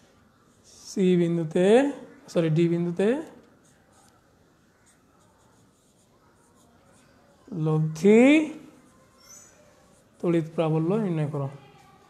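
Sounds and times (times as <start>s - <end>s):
marker writing on whiteboard: 3.1s - 12.0s.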